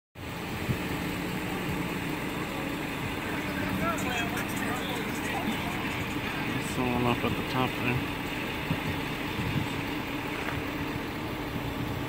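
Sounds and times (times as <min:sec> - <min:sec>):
vehicle engine idling: 0:00.2 - 0:12.0
faint voices: 0:02.2 - 0:08.3.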